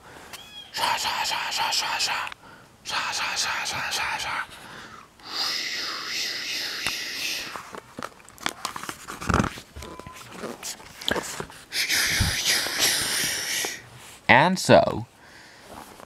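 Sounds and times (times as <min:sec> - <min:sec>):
long hiss: 0:00.2 - 0:07.8, 0:11.7 - 0:13.9
page turning: 0:07.6 - 0:11.5
clicks and knocks handling book: 0:07.6 - 0:11.6.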